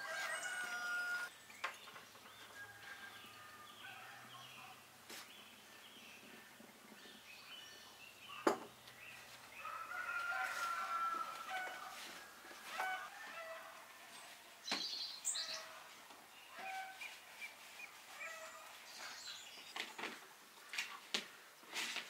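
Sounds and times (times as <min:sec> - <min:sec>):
rooster crowing: 0:00.0 - 0:01.3, 0:02.5 - 0:04.5, 0:09.6 - 0:14.2
small birds chirping: 0:00.0 - 0:10.9, 0:14.1 - 0:21.0.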